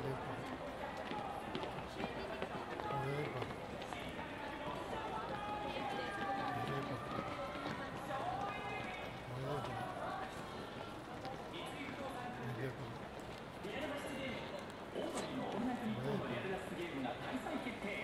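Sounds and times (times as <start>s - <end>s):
crowd talking: 0.0s - 18.0s.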